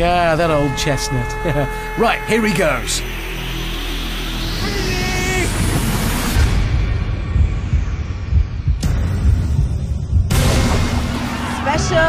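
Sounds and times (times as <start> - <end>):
deep pulsing bass: 0.0 - 12.0.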